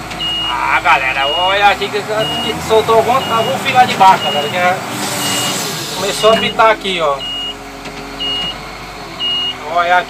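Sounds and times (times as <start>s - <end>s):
engine running: 0.0s - 10.0s
warning alarm beeping: 0.2s - 7.6s, 8.2s - 8.6s, 9.2s - 9.6s.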